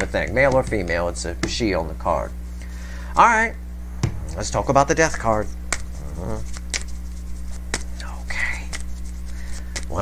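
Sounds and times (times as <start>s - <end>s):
steady low hum: 0.0s - 10.0s
person whispering: 5.2s - 6.6s, 7.9s - 8.8s.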